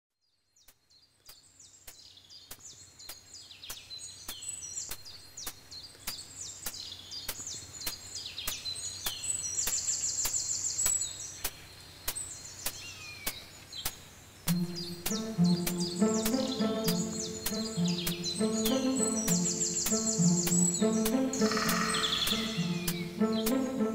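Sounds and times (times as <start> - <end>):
birds whistling: 3.7 - 23.8
steady sharp clicks: 11.4 - 23.6
fast high bird trill: 14.6 - 23.6.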